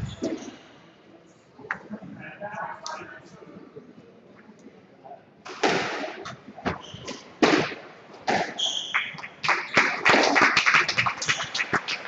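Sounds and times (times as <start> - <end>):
spectators clapping: 8.9 - 12.0.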